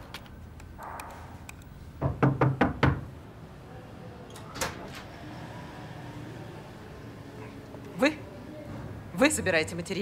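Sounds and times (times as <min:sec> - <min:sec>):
knocks on wooden door: 0:02.0 - 0:03.1.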